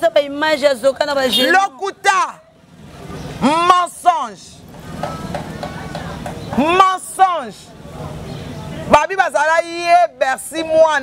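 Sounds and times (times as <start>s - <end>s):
woman speaking: 0.0s - 1.8s.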